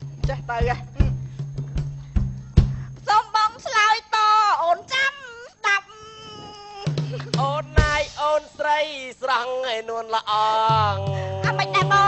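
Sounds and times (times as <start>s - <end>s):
heavy drum hit: 0.1s - 3.0s, 7.7s - 8.3s
person singing: 6.3s - 12.0s.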